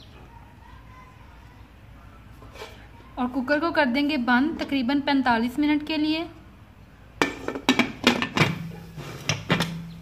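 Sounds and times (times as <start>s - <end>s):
metal lid clinking and knocking: 7.2s - 10.0s.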